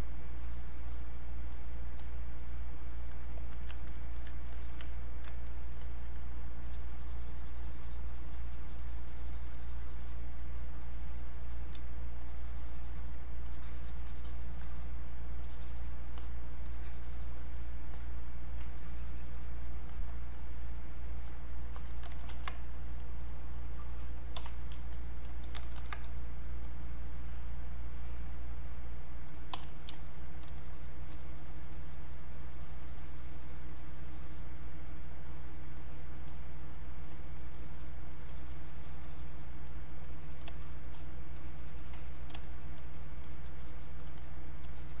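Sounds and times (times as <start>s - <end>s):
steady low hum: 0.0s - 45.0s
mouse and keyboard clicks: 3.1s - 10.2s, 21.2s - 23.1s, 24.3s - 26.2s, 29.5s - 31.5s, 40.0s - 45.0s.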